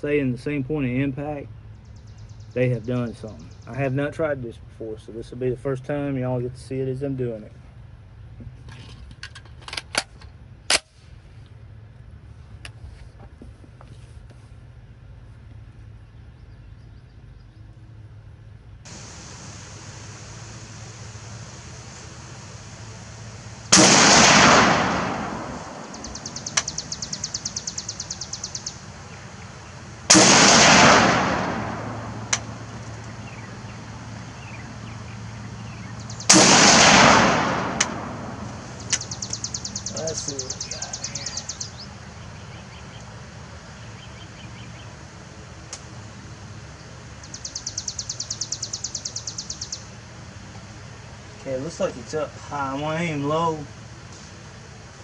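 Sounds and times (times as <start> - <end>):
rifle shots echoing: 23.7 - 27.0, 30.0 - 32.8, 36.3 - 39.2.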